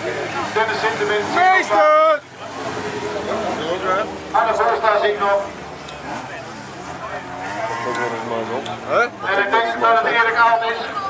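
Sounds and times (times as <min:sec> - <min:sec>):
race car engines passing: 0:00.0 - 0:11.0.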